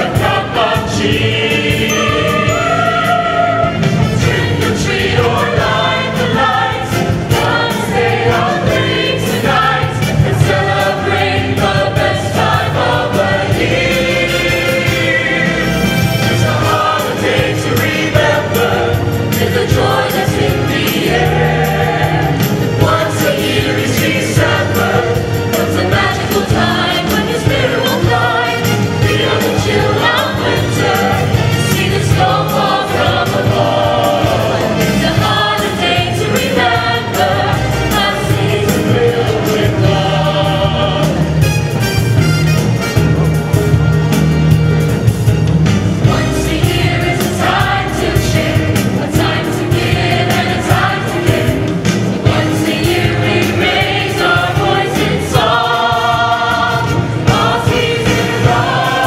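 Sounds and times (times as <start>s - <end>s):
mixed choir singing: 0.0s - 41.8s, 45.7s - 59.0s.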